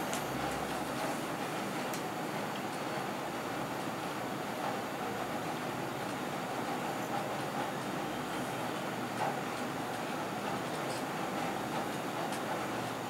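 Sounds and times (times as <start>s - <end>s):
room hum and hiss: 0.0s - 13.0s.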